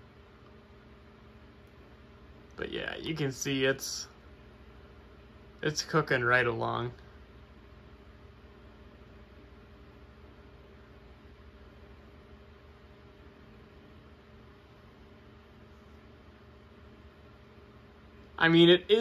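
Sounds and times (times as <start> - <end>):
computer electrical hum: 0.0 - 19.0.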